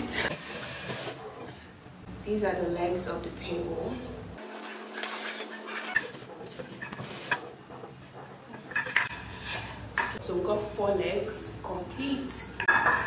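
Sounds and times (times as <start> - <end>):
wooden table legs clacking: 5.8 - 9.2.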